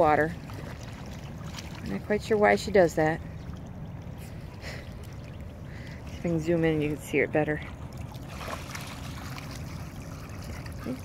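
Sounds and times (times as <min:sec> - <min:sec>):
water splashing and lapping: 0:00.0 - 0:11.0.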